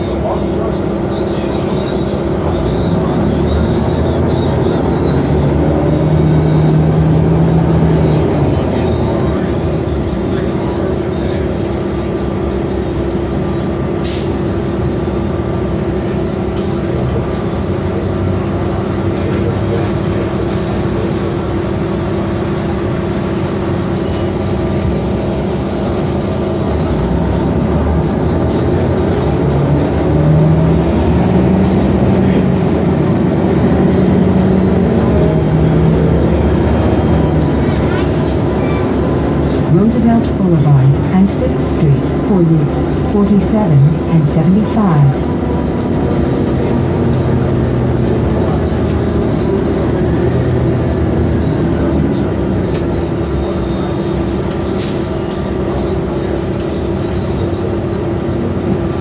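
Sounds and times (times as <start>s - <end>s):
bus diesel engine: 0.0s - 59.0s.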